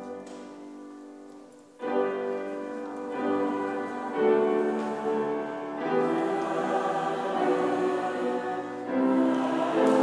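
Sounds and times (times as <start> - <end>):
congregation singing: 1.8 - 10.0.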